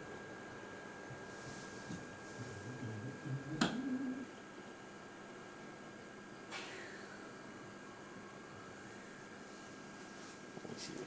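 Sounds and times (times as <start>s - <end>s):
faint low wavering voice: 2.1s - 4.4s.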